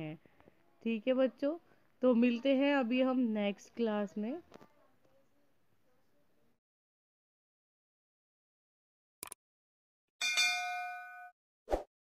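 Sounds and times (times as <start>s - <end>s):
notification bell ding: 10.2s - 11.3s.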